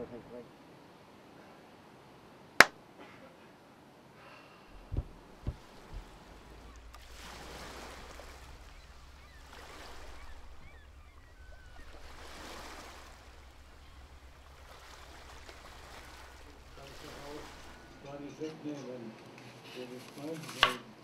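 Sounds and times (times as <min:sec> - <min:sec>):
ocean surf breaking: 0:04.7 - 0:18.2
steady low rumble: 0:04.7 - 0:18.2.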